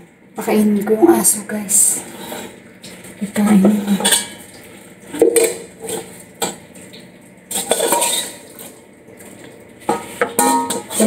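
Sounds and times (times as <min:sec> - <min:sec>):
metal ladle scraping cooking pot: 0:07.5 - 0:08.5, 0:09.9 - 0:11.0.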